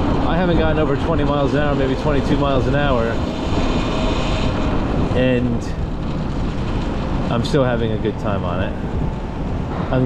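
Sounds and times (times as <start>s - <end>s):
faint high electric motor whine: 0.0s - 10.0s
wind and road noise rushing: 0.0s - 10.0s.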